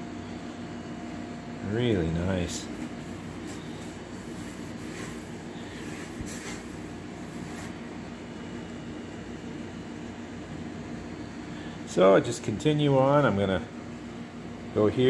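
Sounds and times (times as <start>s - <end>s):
mechanical background hum: 0.0s - 15.0s
cloth rubbing on metal: 2.4s - 7.8s.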